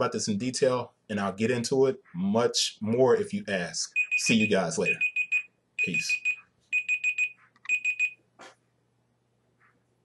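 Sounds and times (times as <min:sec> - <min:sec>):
high-pitched electronic alarm beep: 0:03.9 - 0:08.2.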